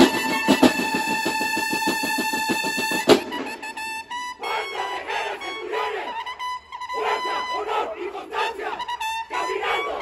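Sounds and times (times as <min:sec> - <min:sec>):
crowd shouting and cheering: 0:04.4 - 0:10.0.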